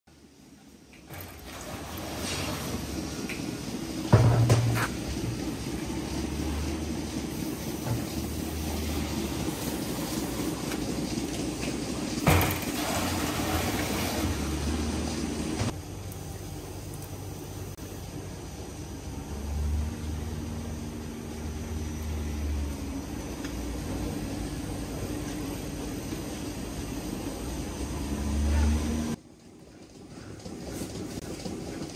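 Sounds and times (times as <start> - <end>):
machinery hum: 0.1 - 29.2
milk pouring into a metal tank: 7.7 - 15.1.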